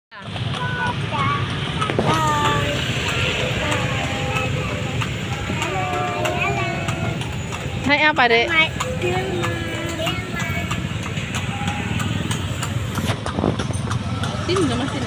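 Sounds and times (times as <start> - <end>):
vehicle low rumble: 0.2 - 15.0
children's voices: 0.4 - 13.0.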